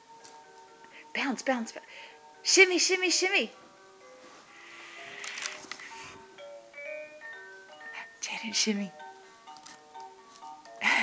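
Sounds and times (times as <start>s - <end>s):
rustling with clicks: 4.3s - 5.9s, 9.5s - 10.8s.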